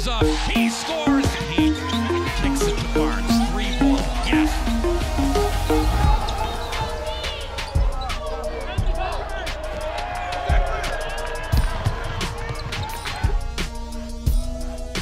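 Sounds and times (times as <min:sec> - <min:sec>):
music: 0:00.0 - 0:15.0.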